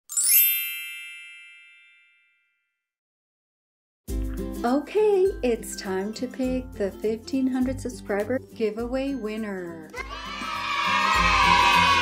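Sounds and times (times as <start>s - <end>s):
bright chime run: 0.1s - 2.4s.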